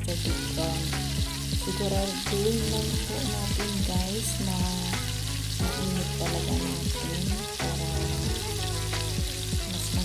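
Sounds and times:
background music low notes: 0.0 - 10.0
rice and prawns sizzling in a pan: 0.0 - 10.0.

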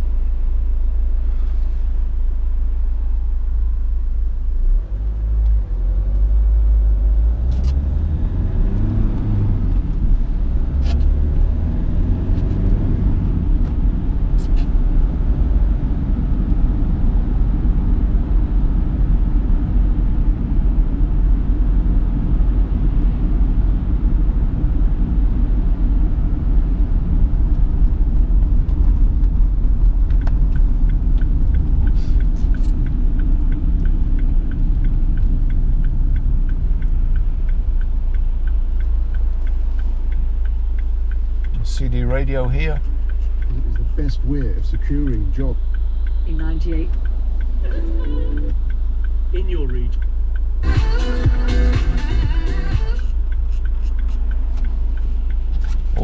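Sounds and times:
car engine and road rumble: 0.0 - 56.0
regular ticking: 27.2 - 56.0.

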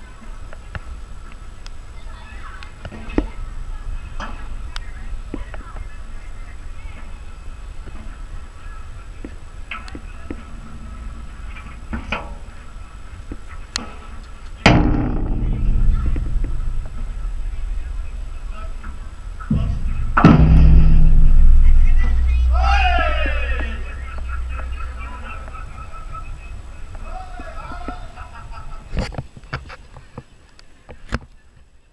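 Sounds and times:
voices: 0.0 - 31.9.

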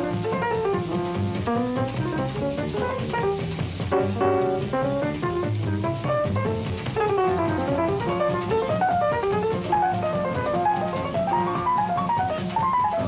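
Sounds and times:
bass and drum rhythm: 0.0 - 13.0
bebop jazz quintet: 0.0 - 13.0
fast piano runs: 0.0 - 13.0.

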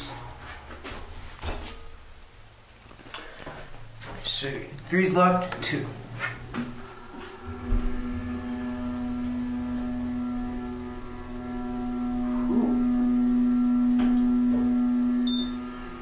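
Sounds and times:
elevator motor humming: 5.1 - 16.0
low rumble: 5.8 - 16.0.

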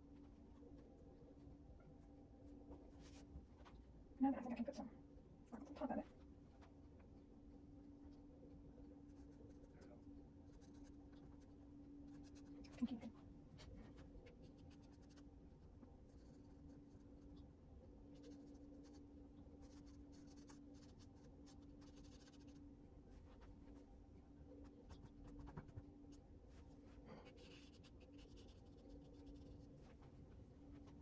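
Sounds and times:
steady low hum: 0.0 - 31.0
pastel stick scratching: 14.3 - 15.3, 16.1 - 17.4, 18.1 - 22.6, 27.2 - 29.8.

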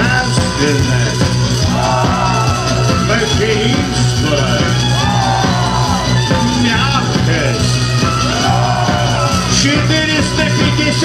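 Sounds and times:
man singing: 0.0 - 5.4, 6.2 - 7.9, 9.1 - 11.0
live rock band playing: 0.0 - 11.0.

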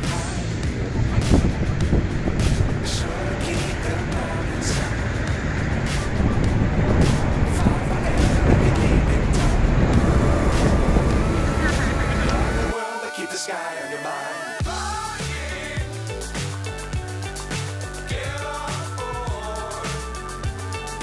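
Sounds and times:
road traffic rumbling: 0.0 - 12.8.

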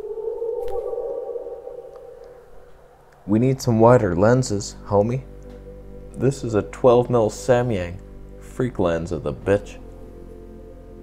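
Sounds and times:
faint higher tone: 0.0 - 11.0
low electronic drone: 0.0 - 11.0.

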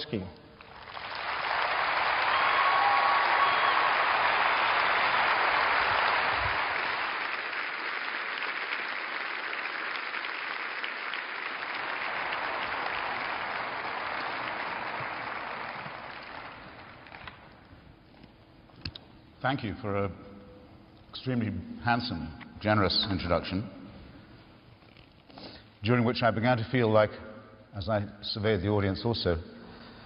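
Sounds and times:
audience applauding: 0.6 - 17.7.

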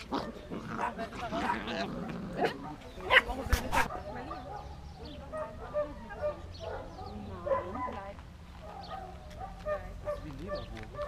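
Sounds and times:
puppies barking and yapping: 0.0 - 11.0
people talking indistinctly: 0.5 - 11.0.

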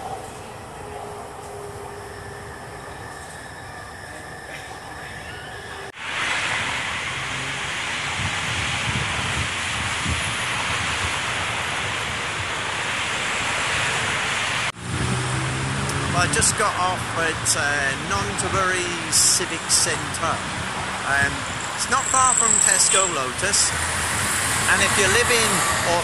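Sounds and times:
heavy traffic rushing: 0.0 - 26.0
metro car running noise: 0.0 - 26.0
wind buffeting microphone: 6.5 - 22.2
faint steady whine: 16.6 - 23.8.

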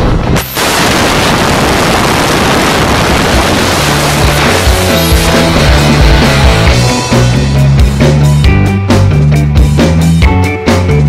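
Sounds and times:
wind roaring on microphone: 0.0 - 4.9.

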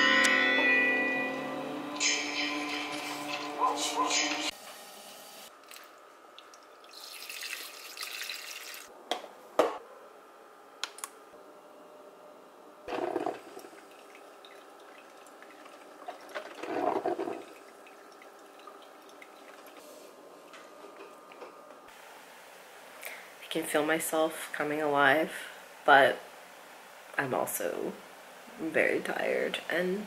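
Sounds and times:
coffee pouring from carafe: 5.6 - 8.9, 12.9 - 19.8.

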